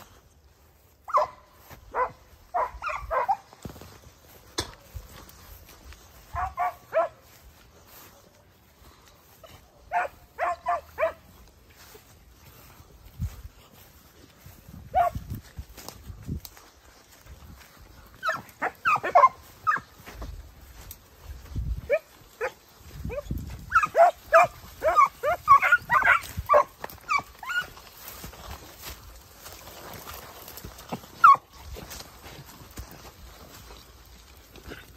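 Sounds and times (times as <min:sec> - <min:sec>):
hounds barking and yelping: 0:00.8 - 0:15.9, 0:17.5 - 0:34.9.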